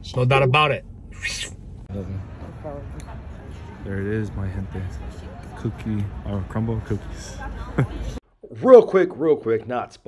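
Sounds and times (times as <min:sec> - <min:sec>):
person making wavering voice sounds: 0:01.1 - 0:01.6.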